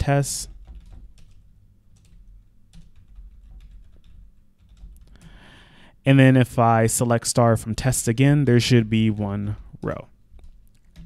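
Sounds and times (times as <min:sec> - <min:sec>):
faint keyboard keystrokes: 0:00.5 - 0:05.4, 0:09.8 - 0:11.0.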